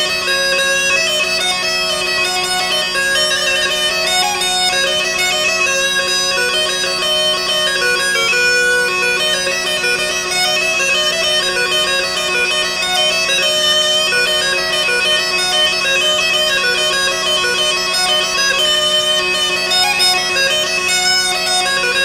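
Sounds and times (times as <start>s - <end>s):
bagpipe melody over drones: 0.0s - 22.0s.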